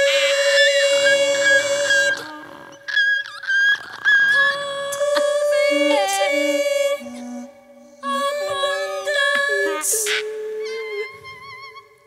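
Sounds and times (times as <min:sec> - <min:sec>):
women singing a cappella: 0:00.0 - 0:02.9, 0:04.3 - 0:11.8.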